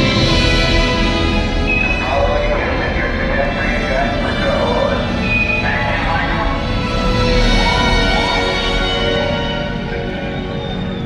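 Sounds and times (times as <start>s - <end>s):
loud soundtrack music: 0.0s - 11.0s
voices: 1.6s - 11.0s.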